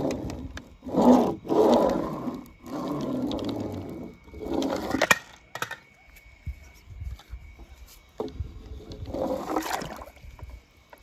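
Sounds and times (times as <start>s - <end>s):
toy wheels rolling through paint: 0.0s - 5.8s, 8.1s - 11.0s.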